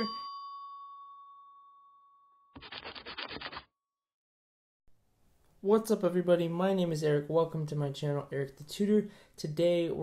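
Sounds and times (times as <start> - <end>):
chime ringing: 0.0 - 2.6
scratchy rubbing: 2.6 - 3.6.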